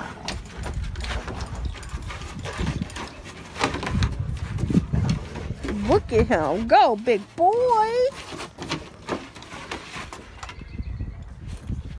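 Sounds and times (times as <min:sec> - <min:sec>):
paws scuffling on wooden deck: 0:00.0 - 0:10.5.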